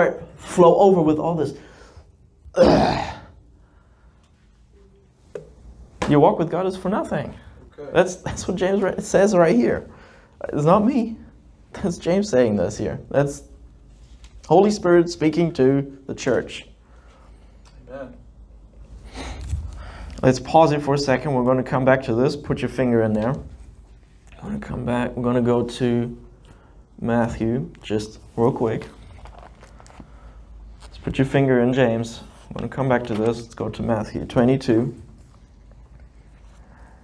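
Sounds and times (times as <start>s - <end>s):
man clearing his throat: 2.5s - 3.4s
man speaking: 31.0s - 35.1s.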